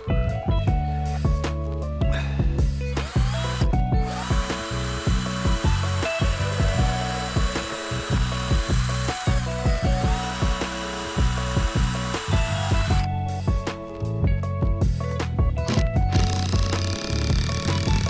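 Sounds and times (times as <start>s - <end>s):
background music: 0.0s - 18.0s
cordless drill whining: 3.0s - 13.1s, 15.7s - 18.0s.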